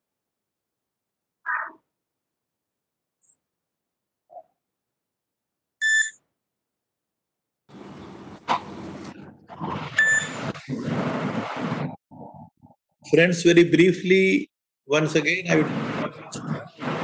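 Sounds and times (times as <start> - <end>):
short electronic beep: 5.8 - 6.2, 10.0 - 10.3
muffled microphone noise: 7.7 - 12.8, 15.6 - 17.0.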